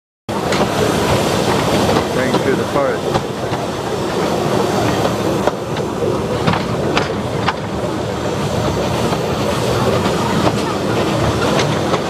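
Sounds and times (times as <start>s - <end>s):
train carriages rumbling and rattling: 0.3s - 12.0s.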